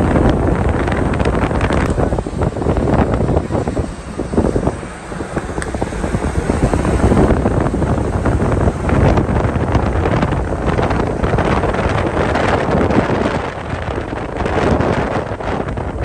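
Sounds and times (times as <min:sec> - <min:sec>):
road noise: 0:00.0 - 0:16.0
wind buffeting microphone: 0:00.0 - 0:16.0.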